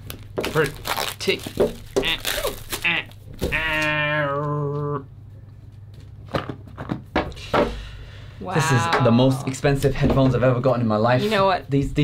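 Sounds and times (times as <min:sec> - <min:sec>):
person talking and laughing: 0:08.4 - 0:09.7.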